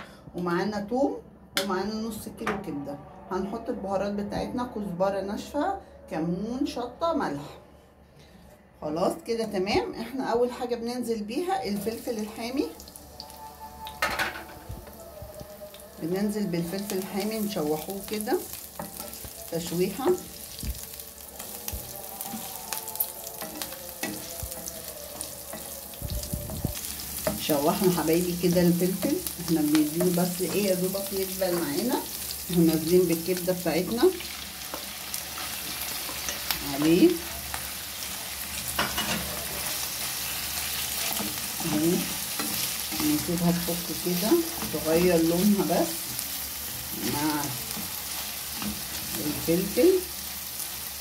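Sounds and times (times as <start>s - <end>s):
peppers sizzling in hot oil: 11.7s - 51.0s.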